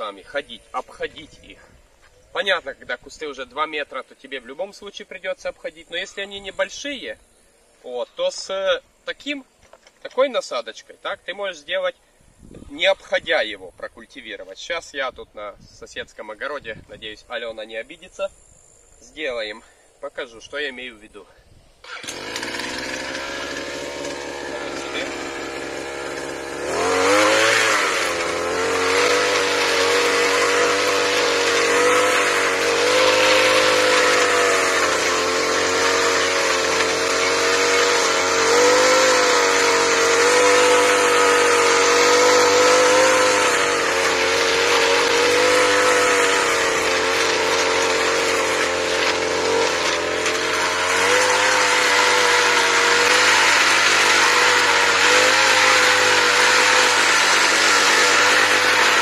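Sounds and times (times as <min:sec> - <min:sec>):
brush cutter engine at high revs: 0:21.8 - 0:59.0
tines digging into soil: 0:21.8 - 0:59.0.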